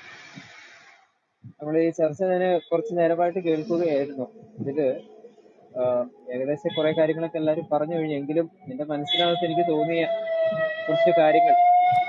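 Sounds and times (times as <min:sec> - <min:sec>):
man speaking: 0:01.6 - 0:05.1, 0:05.8 - 0:10.2, 0:10.8 - 0:11.6.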